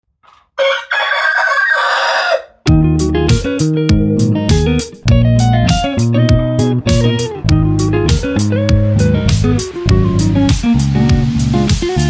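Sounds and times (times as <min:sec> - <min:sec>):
rooster crowing: 0:00.3 - 0:02.6.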